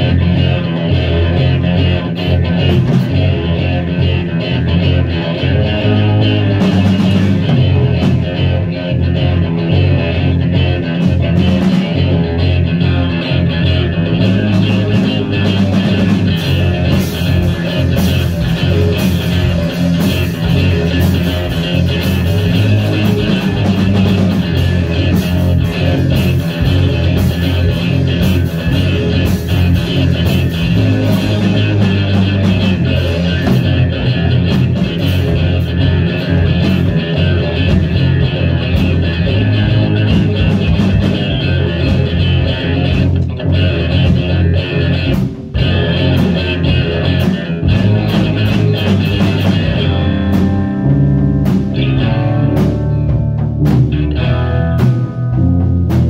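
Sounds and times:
bass guitar: 0.0 - 56.0
distorted electric guitar: 0.0 - 56.0
drum kit: 0.0 - 56.0.

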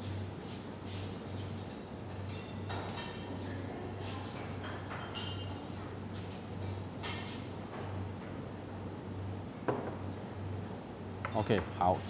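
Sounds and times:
steady low hum: 5.3 - 12.0.

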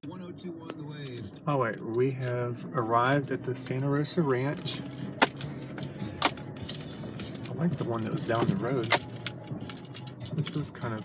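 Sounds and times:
car rolling low rumble: 0.0 - 11.0.

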